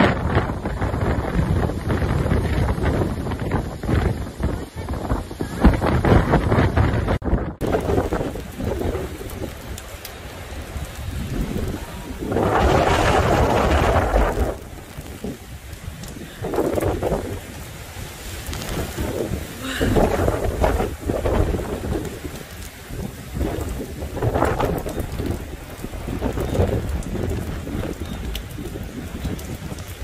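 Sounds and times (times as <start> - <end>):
driving rain: 0.0 - 30.0
gusting wind: 0.0 - 30.0.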